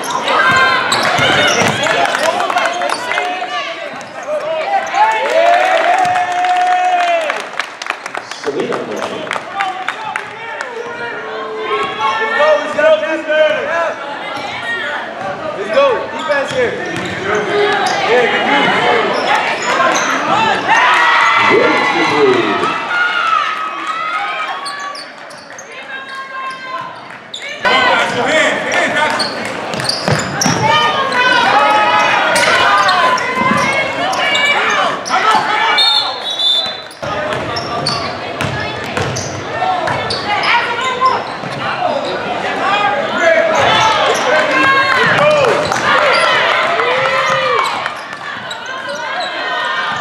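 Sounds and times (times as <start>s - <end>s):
people shouting in echoing hall: 17.5s - 25.0s, 30.4s - 37.6s.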